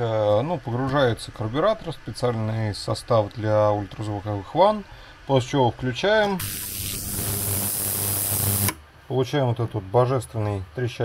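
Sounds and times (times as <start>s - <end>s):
ultrasonic cleaner crackling hiss: 6.3s - 8.8s.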